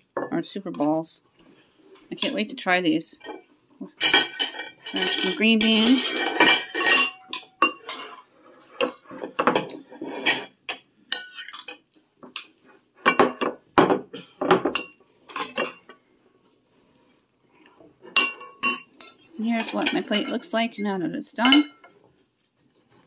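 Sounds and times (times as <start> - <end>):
utensil clinking on ceramic plate: 4.0 - 8.2, 14.5 - 16.0, 18.1 - 20.5, 21.4 - 21.9.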